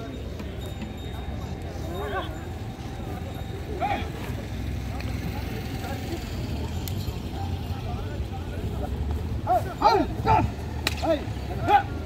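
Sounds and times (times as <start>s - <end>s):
people calling out: 0.0s - 5.2s, 9.4s - 12.0s.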